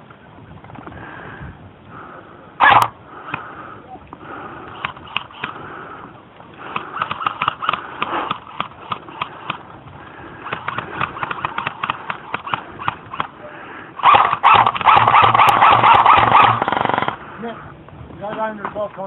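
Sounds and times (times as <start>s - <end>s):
sharp clicks and pops: 4.7s - 5.6s, 6.6s - 9.7s, 10.4s - 13.4s, 14.0s - 17.2s.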